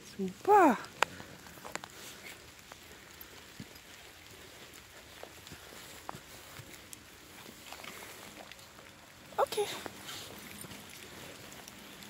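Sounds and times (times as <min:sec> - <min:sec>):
dry leaves rustling and crackling: 0:00.0 - 0:12.0
faint footsteps: 0:00.0 - 0:12.0.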